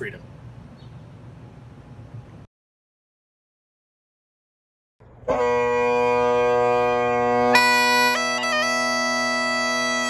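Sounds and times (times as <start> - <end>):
bagpipe holding a loud note: 5.2 - 10.0.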